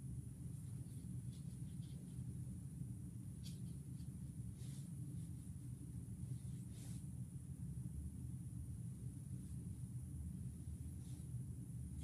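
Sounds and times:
faint high whine: 0:00.0 - 0:12.0
low room hum: 0:00.0 - 0:12.0.

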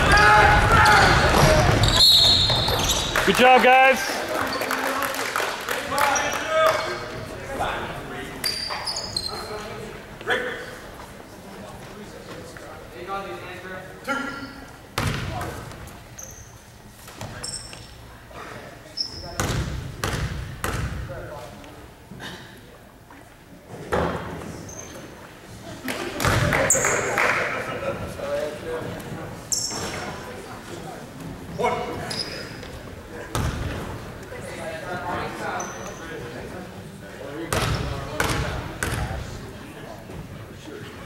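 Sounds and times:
echoing voices in a hall: 0:00.0 - 0:41.0.

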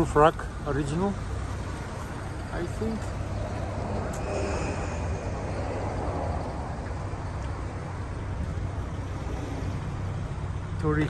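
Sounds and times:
vehicle engine idling: 0:00.0 - 0:11.0.

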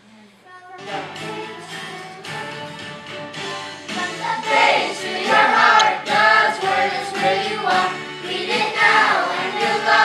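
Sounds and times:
children singing in chorus: 0:03.4 - 0:10.0.

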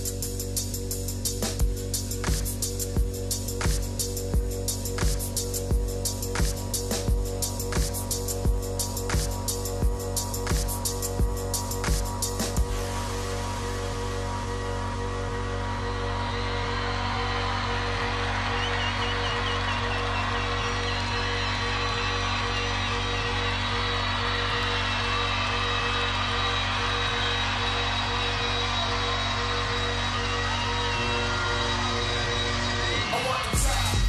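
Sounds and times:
crowd whooping: 0:06.2 - 0:34.0.

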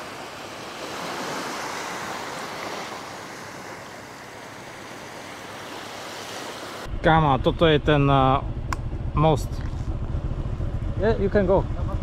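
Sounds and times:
small waves washing onto beach: 0:00.0 - 0:06.9.

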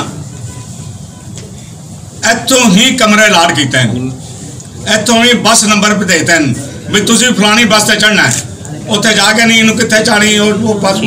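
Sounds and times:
crowded room background noise: 0:00.0 - 0:11.0.

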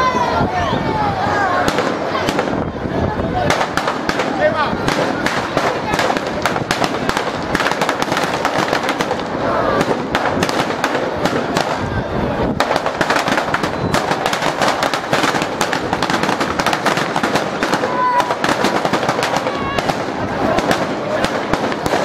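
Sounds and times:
firecrackers crackling: 0:01.3 - 0:22.0.

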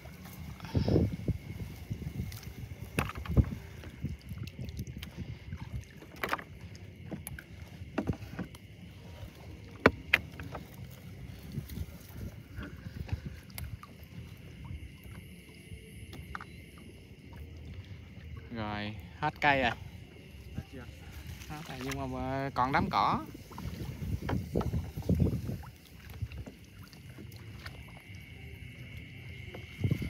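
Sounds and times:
plants brushing against hull: 0:00.0 - 0:14.4, 0:20.4 - 0:28.0
water sloshing: 0:00.0 - 0:30.0.

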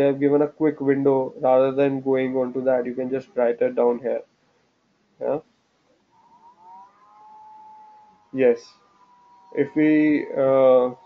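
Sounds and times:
faint siren wailing: 0:06.2 - 0:11.0.

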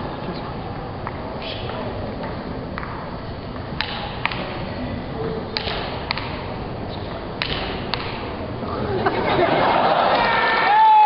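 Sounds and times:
large hall background noise: 0:00.0 - 0:11.0
table tennis ball clicks: 0:03.6 - 0:04.5, 0:05.6 - 0:06.4, 0:07.4 - 0:08.3.

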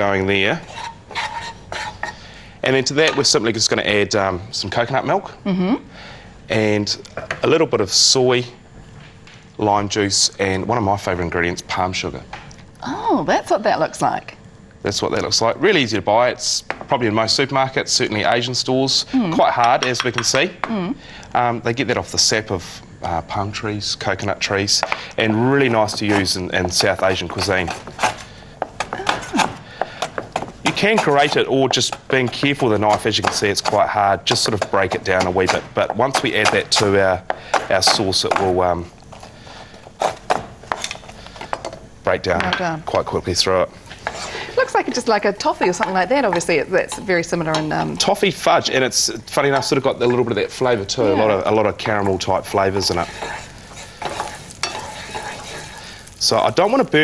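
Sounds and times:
wooden spatula scraping pan: 0:00.0 - 0:02.2, 0:24.8 - 0:38.5, 0:39.1 - 0:41.6, 0:43.9 - 0:47.2, 0:51.6 - 0:57.0
paste sizzling in frying pan: 0:00.0 - 0:03.9, 0:24.0 - 0:42.1, 0:42.9 - 0:57.0
knife chopping on cutting board: 0:25.7 - 0:38.6, 0:40.0 - 0:40.9.

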